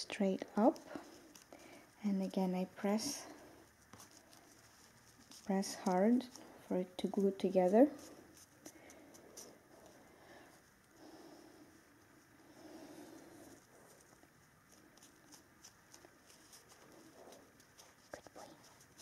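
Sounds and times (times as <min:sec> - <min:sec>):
faint low hums: 0:00.0 - 0:19.0
tape rustling and clicks: 0:00.6 - 0:02.0, 0:03.6 - 0:10.0.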